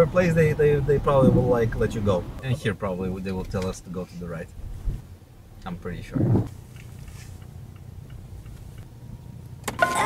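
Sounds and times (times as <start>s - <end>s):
car engine and road drone: 0.0s - 10.0s.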